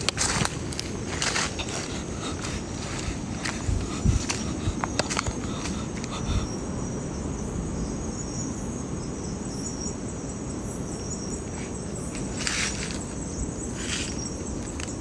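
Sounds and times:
low rumbling hiss: 0:00.0 - 0:15.0
night insects chorus: 0:00.0 - 0:15.0.

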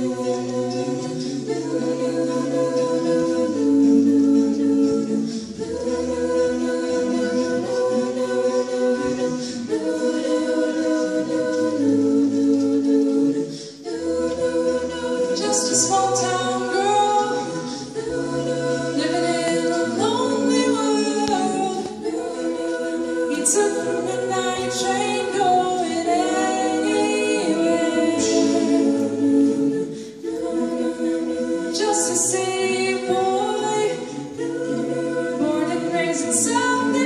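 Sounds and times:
a cappella choir singing: 0:00.0 - 0:37.0.

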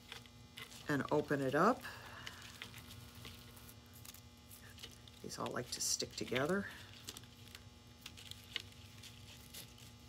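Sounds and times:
artificial branch rustling: 0:00.0 - 0:10.0
low steady hum: 0:00.0 - 0:10.0.

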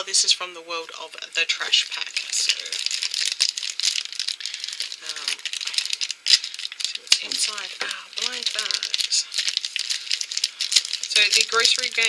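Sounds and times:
plastic bag crinkling: 0:00.9 - 0:12.0.

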